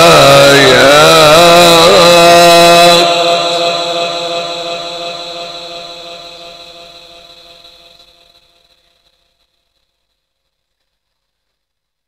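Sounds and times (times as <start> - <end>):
person reciting with echo: 0.0 - 7.9.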